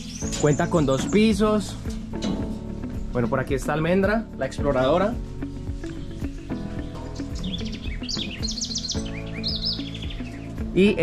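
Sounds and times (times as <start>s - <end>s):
background music with held notes: 0.0s - 11.0s
bird chirping whistles: 7.2s - 10.5s.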